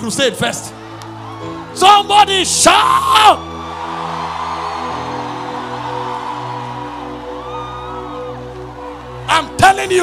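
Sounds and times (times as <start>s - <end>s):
keyboard sustained chords: 0.0s - 10.0s
congregation shouting and cheering: 0.4s - 10.0s.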